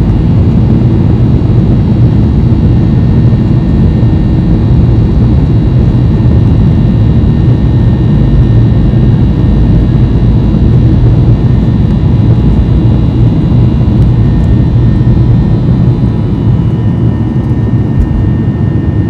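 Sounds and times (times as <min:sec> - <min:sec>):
jet engines rumbling with whine: 0:00.0 - 0:19.0.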